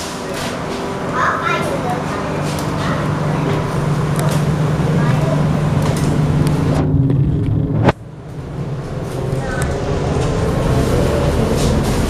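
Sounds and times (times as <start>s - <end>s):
train running noise: 0.0s - 12.0s
low hum: 2.0s - 12.0s.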